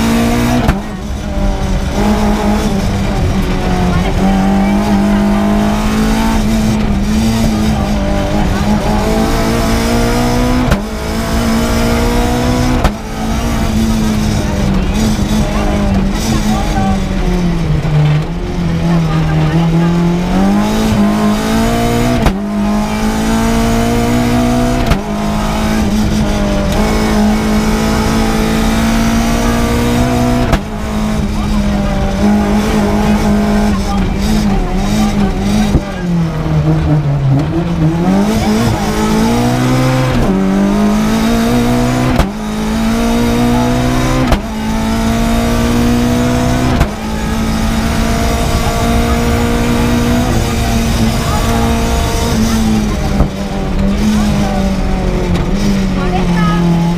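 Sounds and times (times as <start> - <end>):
car engine at full throttle: 0.0 - 56.9.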